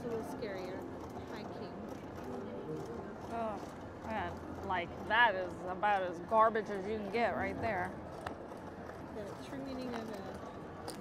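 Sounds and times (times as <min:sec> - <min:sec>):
people talking: 0:00.0 - 0:01.9, 0:03.3 - 0:07.9, 0:09.2 - 0:10.4.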